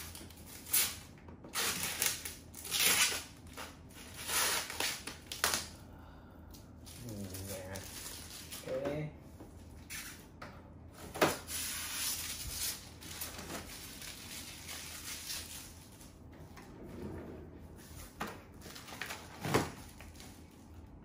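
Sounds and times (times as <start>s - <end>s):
plastic wrapping crinkling: 6.8s - 8.8s, 11.9s - 16.2s.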